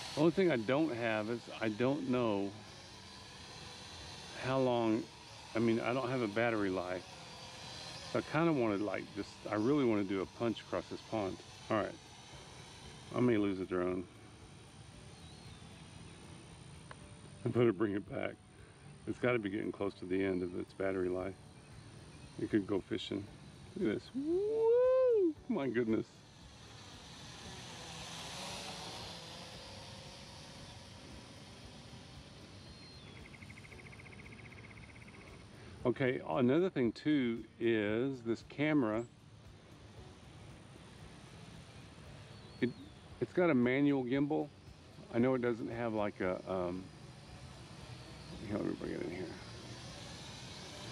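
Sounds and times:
low rumble and hiss: 0.0 - 50.9
outdoor background noise: 0.0 - 50.9
high chirp: 32.4 - 35.7, 42.2 - 43.2.

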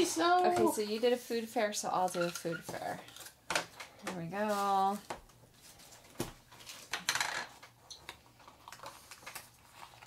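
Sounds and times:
wrapped packet rustling: 8.2 - 10.0.

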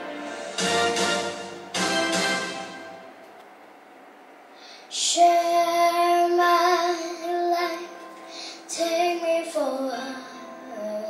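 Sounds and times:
girl singing into a microphone: 4.9 - 11.0.

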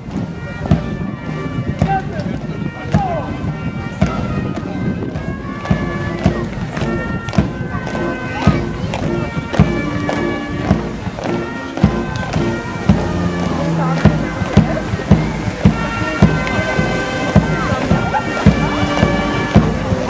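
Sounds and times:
brass band playing a march: 0.0 - 20.0.

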